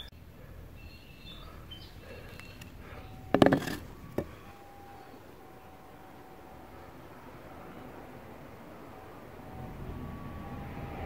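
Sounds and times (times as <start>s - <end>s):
handlebars clattering on dirt: 2.3s - 4.5s
handlebars knocking on dirt: 3.3s - 4.4s.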